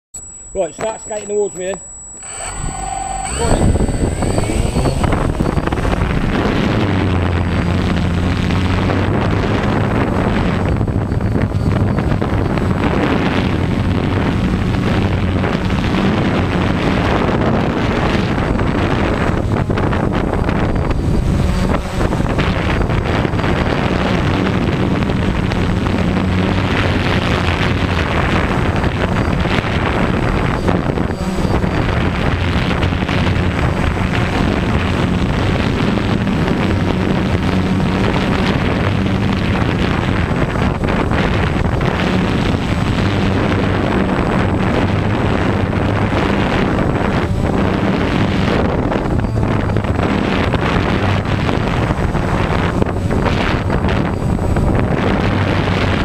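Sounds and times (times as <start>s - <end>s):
drone propellers buzzing hum: 0.2s - 56.0s.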